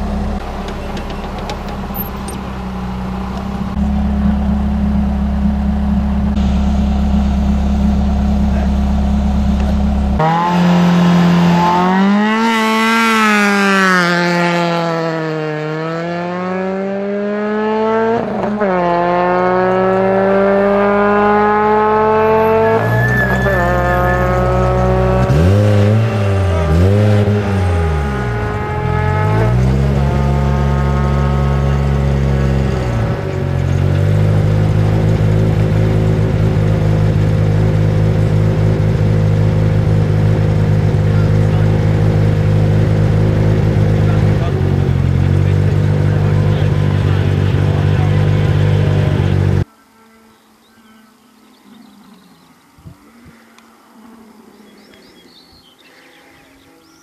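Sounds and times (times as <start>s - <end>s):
rally car engine revving: 0.0s - 49.7s.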